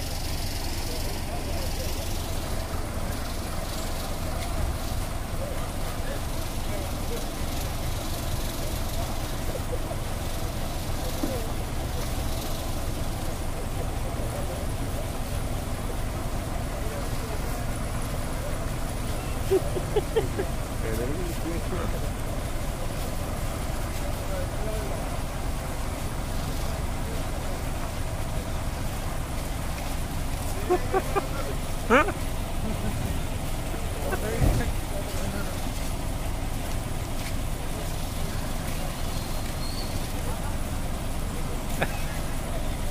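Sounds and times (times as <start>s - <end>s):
bus engine idling: 0.0s - 42.9s
indistinct voices: 0.0s - 42.9s
vehicle and road rumble: 0.0s - 42.9s
short laugh: 19.2s - 20.6s, 30.6s - 33.2s, 41.7s - 42.3s.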